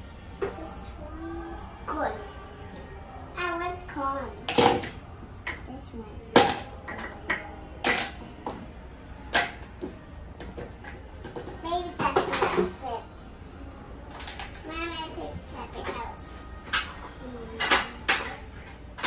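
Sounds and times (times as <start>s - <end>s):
small child's voice: 0.4s - 2.3s, 3.4s - 4.4s, 11.5s - 13.2s, 14.6s - 16.5s
plastic toy clacking on plastic: 16.6s - 19.0s.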